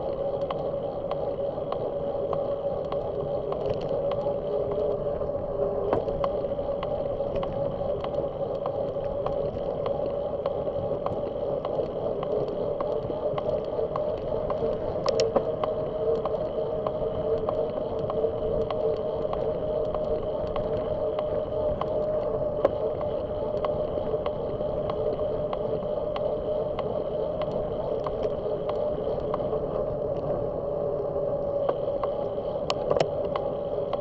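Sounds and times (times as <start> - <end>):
bicycle tyres humming on asphalt: 0.0 - 34.0
light regular clicking: 0.1 - 5.0, 5.8 - 30.4, 31.5 - 34.0.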